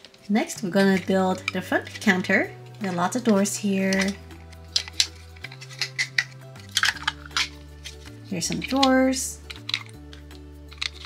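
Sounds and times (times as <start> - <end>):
plastic parts clicking together: 0.0 - 11.0
soft background music: 0.0 - 11.0.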